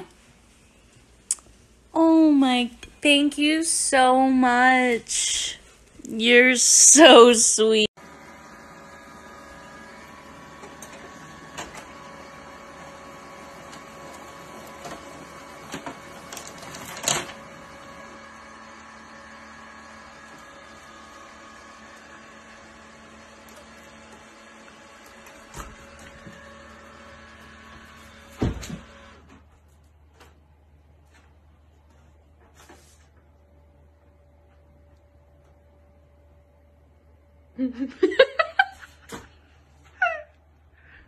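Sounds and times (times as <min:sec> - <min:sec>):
printer humming: 0:08.0 - 0:29.4.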